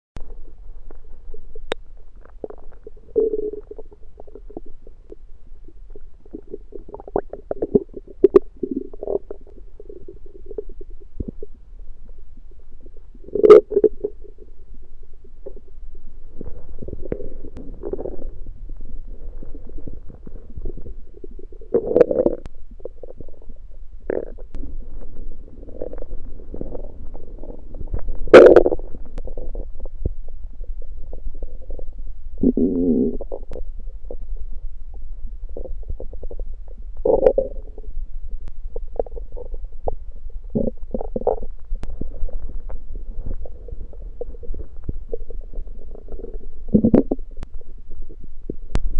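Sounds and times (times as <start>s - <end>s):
stomach growling and gurgling: 0.2s - 48.9s.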